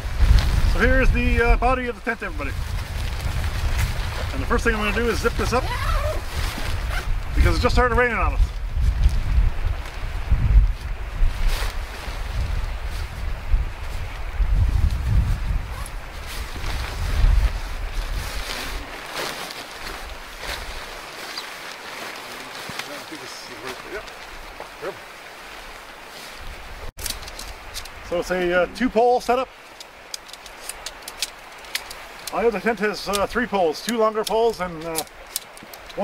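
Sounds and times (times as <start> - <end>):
wind buffeting microphone: 0.0 - 21.5
tent fabric rustling: 0.0 - 28.1.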